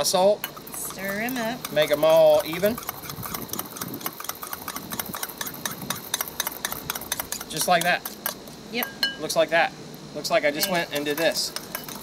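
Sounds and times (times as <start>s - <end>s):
spoon scraping against bowl: 0.4s - 9.0s, 10.6s - 12.0s.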